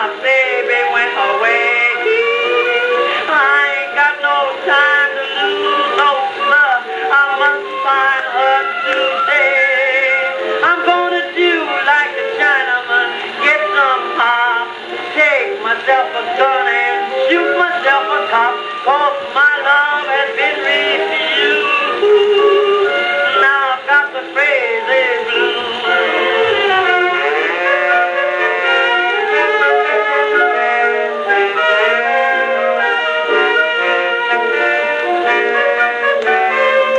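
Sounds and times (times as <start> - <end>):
old phonograph jazz band recording: 0.0 - 36.9.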